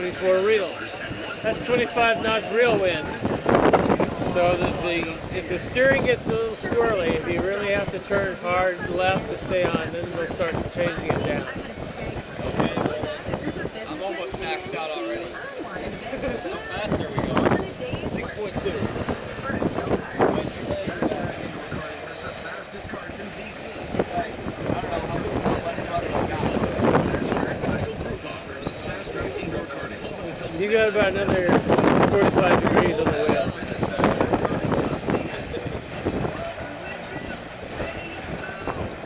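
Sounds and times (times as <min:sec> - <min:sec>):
indistinct talking: 0:00.0 - 0:39.0
water rushing along boat hull: 0:00.0 - 0:39.0
wind buffeting microphone: 0:00.0 - 0:39.0.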